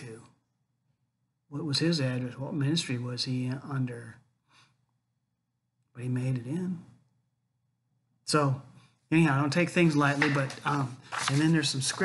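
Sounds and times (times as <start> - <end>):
man talking: 0.0 - 0.4, 1.5 - 4.3, 5.9 - 7.0, 8.2 - 12.0.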